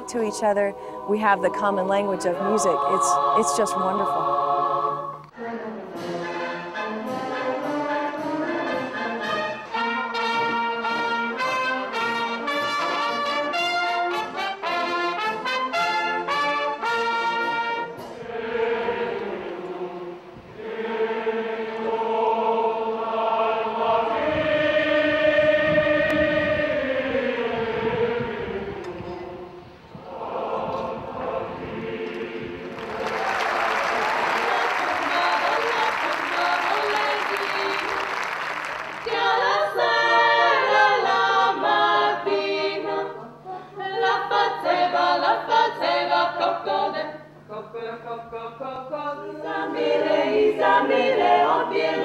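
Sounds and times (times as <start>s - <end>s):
women's voices singing: 0.0s - 6.2s, 33.9s - 38.4s, 39.0s - 52.0s
choir singing held chords: 0.0s - 52.0s
applause: 32.7s - 39.1s.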